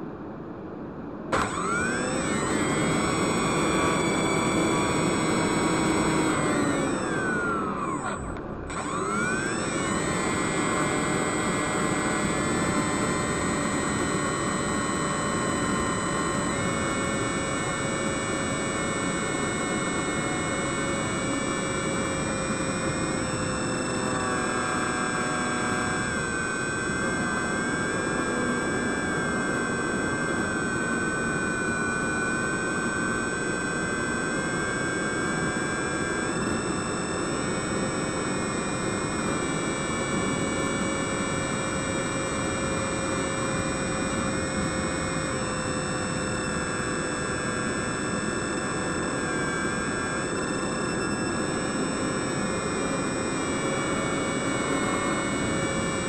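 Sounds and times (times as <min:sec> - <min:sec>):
electric motor and propeller whine: 0:00.8 - 0:56.0.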